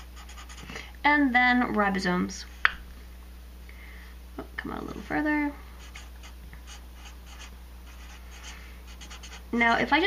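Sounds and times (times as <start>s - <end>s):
marker writing on paper: 5.8s - 9.4s.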